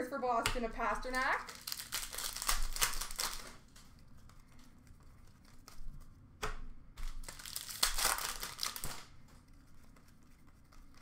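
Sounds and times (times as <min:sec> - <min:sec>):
foil wrappers crinkling: 0:00.8 - 0:06.1, 0:07.0 - 0:10.2
sharp foil crackle: 0:01.1 - 0:04.7, 0:07.0 - 0:09.3.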